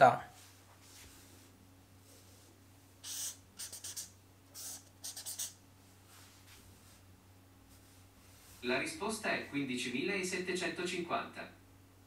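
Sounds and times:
marker scratching on paper: 3.0 - 5.6.

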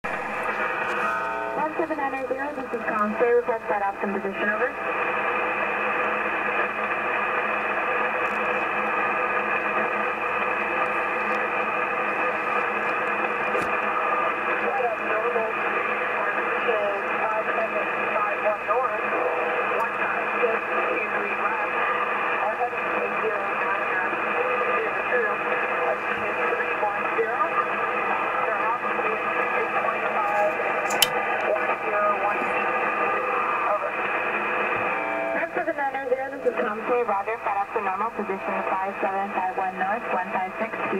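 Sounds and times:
shortwave radio static: 0.0 - 40.9
faint radio voices: 0.1 - 40.9.

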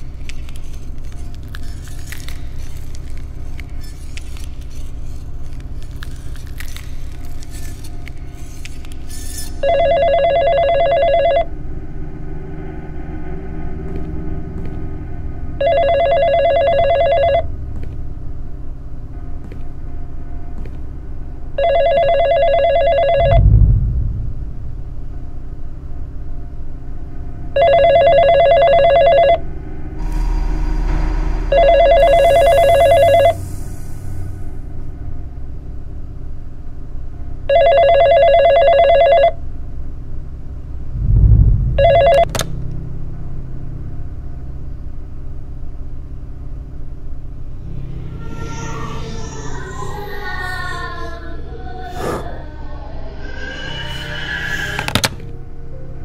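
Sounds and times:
telephone ringing: 9.6 - 11.5, 15.6 - 17.5, 21.6 - 23.4, 27.6 - 29.4, 31.5 - 33.4, 37.5 - 39.4, 41.8 - 42.5
low drone: 11.5 - 16.0, 23.0 - 27.6, 29.4 - 37.5, 39.7 - 56.0
deep thuds: 23.4 - 24.8.

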